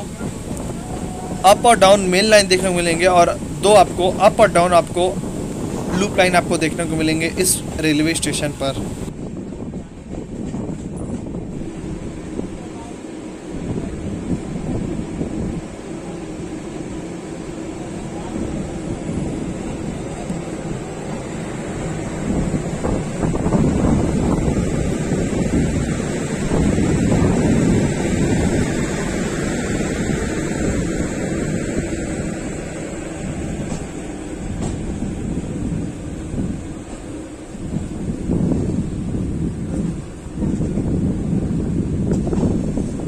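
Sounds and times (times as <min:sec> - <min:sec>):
train rumble: 0:00.0 - 0:43.0
wind buffeting microphone: 0:00.0 - 0:43.0.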